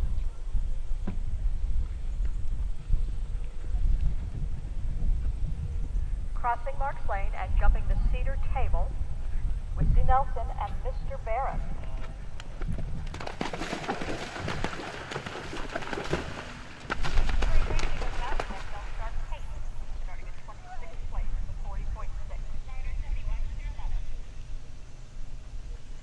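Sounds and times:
indistinct voices talking: 0:09.8 - 0:12.2.

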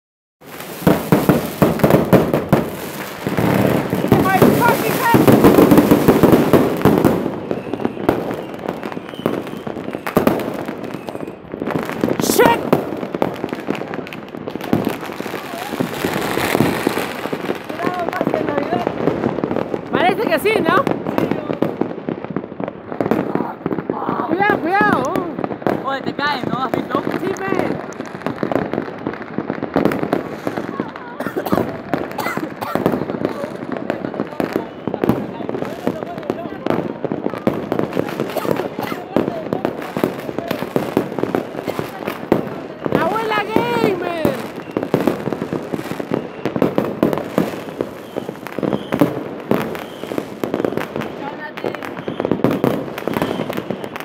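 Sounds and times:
firecrackers banging and crackling: 0:00.4 - 0:54.0
people's voices: 0:02.6 - 0:22.2, 0:22.8 - 0:54.0.

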